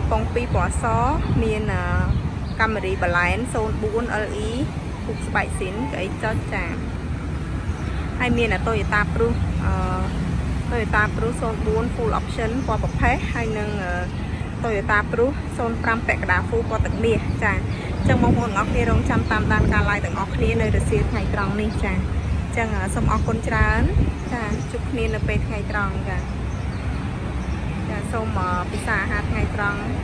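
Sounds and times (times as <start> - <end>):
person talking: 0.0 - 6.8
street traffic rumble: 0.0 - 30.0.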